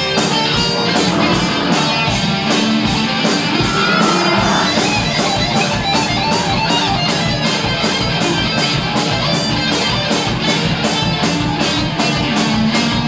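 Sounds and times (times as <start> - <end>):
electric guitar: 0.0 - 13.0
live rock band playing: 0.0 - 13.0.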